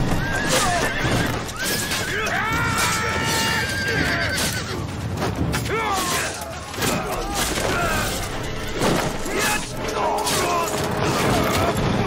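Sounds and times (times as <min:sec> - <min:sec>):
horse whinnying: 0:00.0 - 0:04.9.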